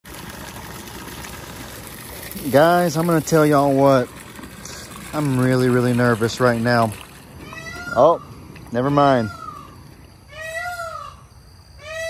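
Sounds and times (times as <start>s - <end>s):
water from hose pouring into tub: 0.0s - 9.3s.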